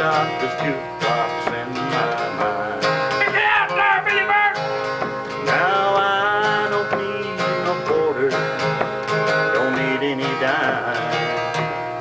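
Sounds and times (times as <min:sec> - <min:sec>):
man singing country song: 0:00.0 - 0:11.8
acoustic guitar strumming: 0:00.0 - 0:12.0.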